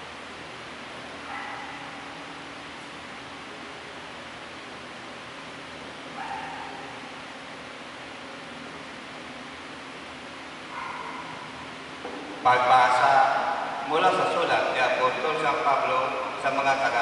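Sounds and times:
room noise hiss: 0.0s - 17.0s.

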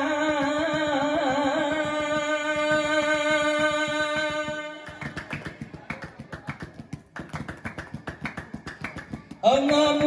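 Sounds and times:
hands clapping and beating pillows: 0.2s - 10.0s.

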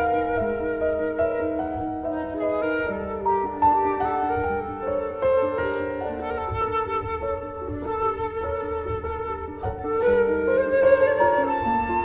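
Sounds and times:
flute and piano chamber music: 0.0s - 12.0s.

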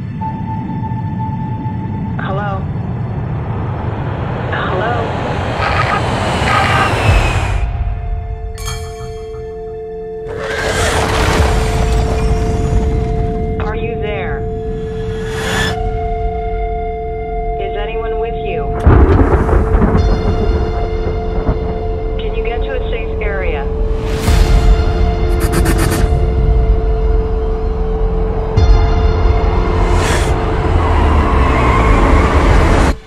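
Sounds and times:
wavering voice-like sound: 4.5s - 7.4s
loud boom hit with rumbling tail: 18.8s - 22.2s.

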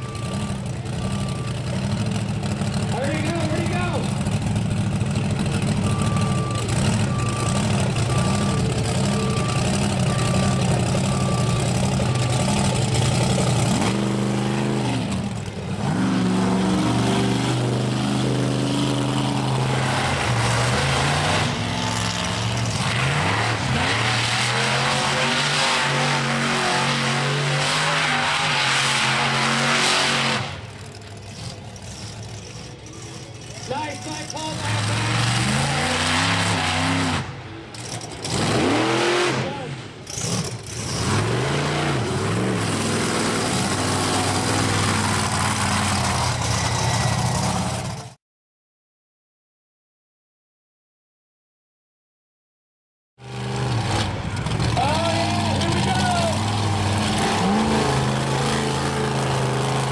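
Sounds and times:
monster truck engines revving: 0.0s - 48.2s, 53.2s - 59.9s.

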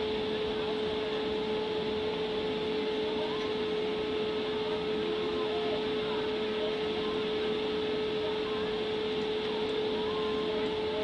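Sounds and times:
blower fan humming: 0.0s - 11.0s.

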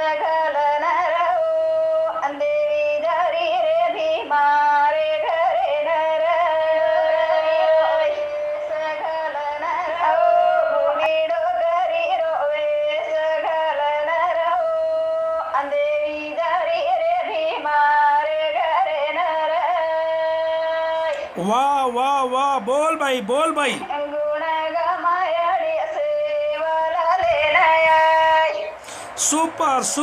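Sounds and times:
woman singing folk song: 0.0s - 21.4s, 23.9s - 29.4s.

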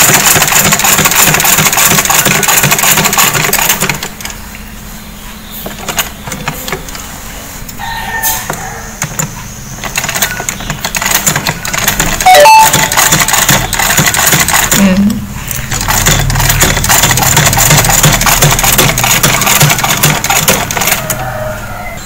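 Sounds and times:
sewing machine stitching: 0.0s - 4.3s, 9.0s - 21.2s
loud sharp sound: 12.3s - 12.9s.

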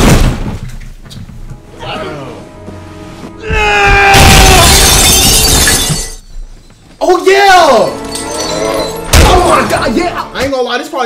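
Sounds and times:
music: 1.0s - 4.6s, 7.0s - 11.0s
person screaming: 3.4s - 5.0s
shattering crash: 4.1s - 6.3s.

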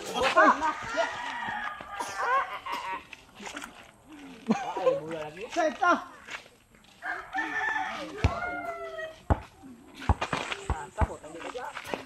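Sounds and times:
rooster crowing: 0.6s - 2.7s, 7.0s - 9.2s.

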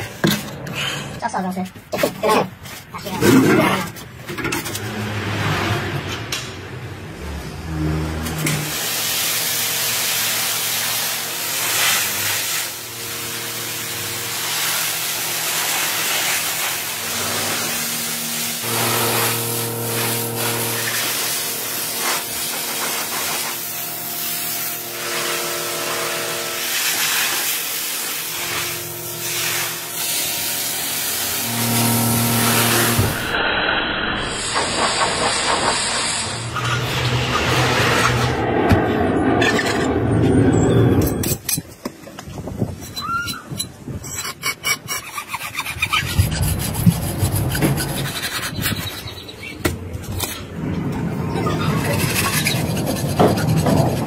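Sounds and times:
gas torch rushing hiss: 8.5s - 26.0s, 26.6s - 38.3s.

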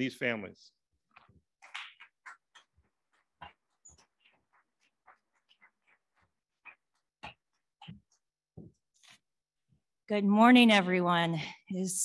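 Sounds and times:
footsteps: 1.1s - 9.2s.

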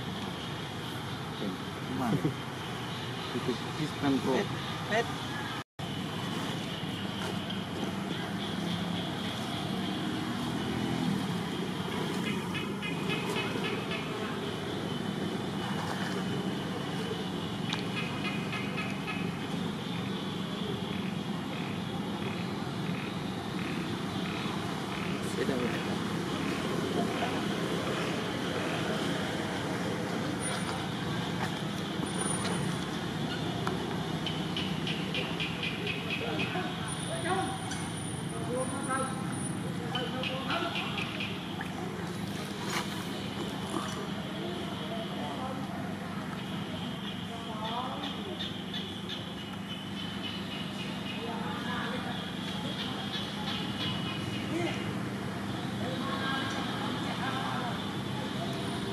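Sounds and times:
distant traffic: 0.0s - 58.9s.

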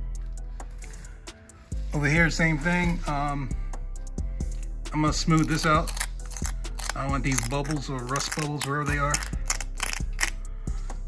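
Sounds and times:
metal pick scratching metal: 5.3s - 10.4s.

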